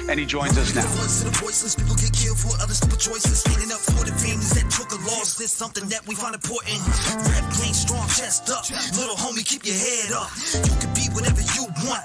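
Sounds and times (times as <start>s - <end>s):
rapping over a beat: 0.0s - 12.0s
deep sliding bass notes: 0.5s - 2.9s.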